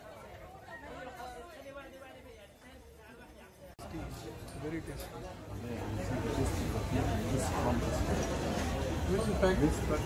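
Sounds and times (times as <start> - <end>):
people chattering: 0.0 - 10.0.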